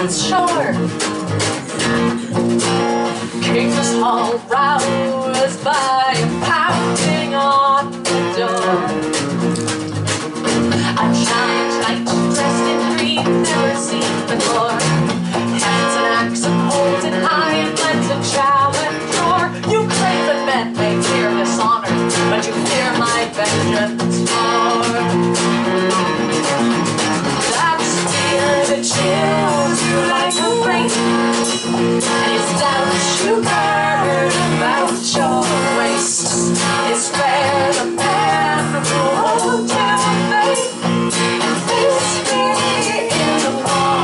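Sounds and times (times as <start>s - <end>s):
woman singing: 0.0s - 1.0s, 1.8s - 9.4s, 10.7s - 26.3s, 27.4s - 44.0s
drum kit steady beat: 0.0s - 44.0s
electric bass: 0.0s - 44.0s
strummed acoustic guitar: 0.0s - 44.0s.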